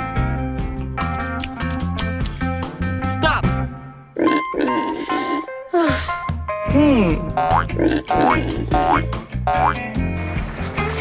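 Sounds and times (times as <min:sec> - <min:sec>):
cartoon background music: 0:01.1 - 0:11.0.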